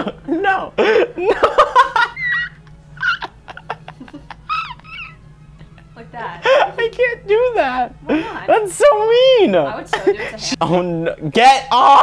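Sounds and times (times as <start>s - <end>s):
person laughing: 0.0s - 6.9s
faint steady hum: 0.0s - 12.0s.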